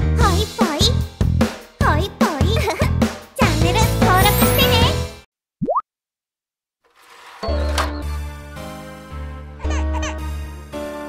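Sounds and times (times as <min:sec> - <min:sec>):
children's jingle music: 0:00.1 - 0:05.2.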